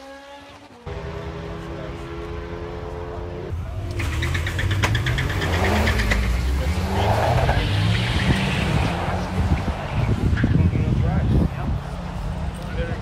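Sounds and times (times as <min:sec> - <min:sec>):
drag racing engine revving: 0:00.2 - 0:13.0.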